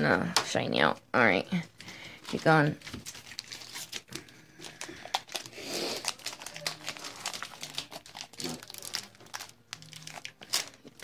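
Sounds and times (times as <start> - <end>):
foil wrappers crinkling: 1.8 - 11.0
trading cards being handled: 1.8 - 11.0.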